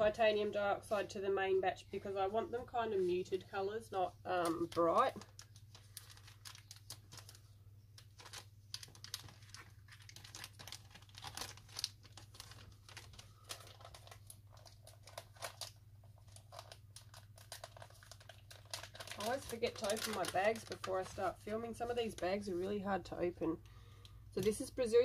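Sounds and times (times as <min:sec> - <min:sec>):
plastic bag crinkling: 0:04.3 - 0:23.2.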